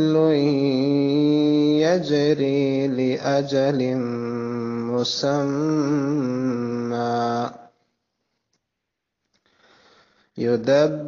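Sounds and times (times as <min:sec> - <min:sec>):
man reciting melodically: 0:00.0 - 0:07.8, 0:10.3 - 0:11.0.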